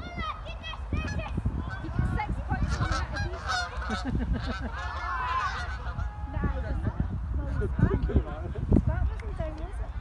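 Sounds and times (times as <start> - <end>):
geese honking: 1.0 - 6.8.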